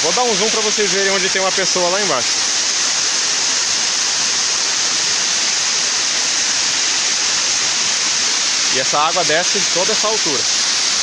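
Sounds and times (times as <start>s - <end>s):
waterfall rushing over rocks: 0.0s - 11.0s.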